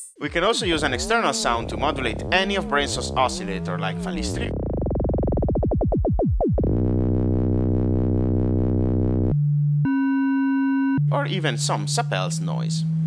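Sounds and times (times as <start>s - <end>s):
synthesizer tone: 0.4s - 11.6s.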